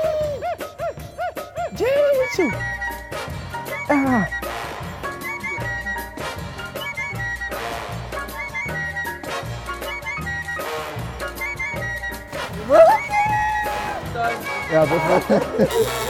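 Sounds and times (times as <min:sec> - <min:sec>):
upbeat background music: 0:00.0 - 0:16.0.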